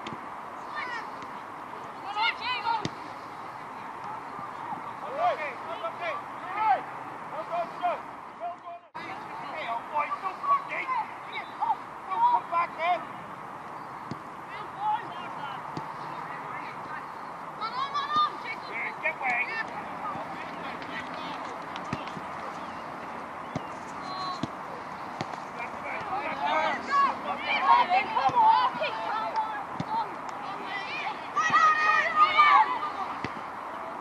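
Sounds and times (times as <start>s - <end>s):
open-air background noise: 0.0s - 34.0s
players and spectators shouting: 2.0s - 3.0s, 3.8s - 13.2s, 17.6s - 23.3s, 24.0s - 34.0s.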